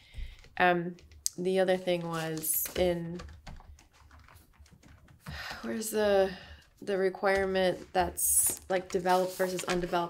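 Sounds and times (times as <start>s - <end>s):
person speaking: 0.6s - 3.4s, 5.4s - 10.0s
typing on laptop keyboard: 2.6s - 5.7s.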